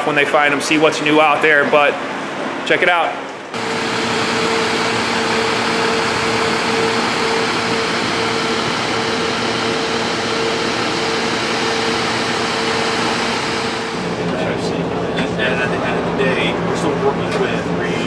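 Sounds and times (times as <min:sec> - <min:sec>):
truck mechanical hum: 0:03.3 - 0:18.0
even rushing noise: 0:03.6 - 0:14.9.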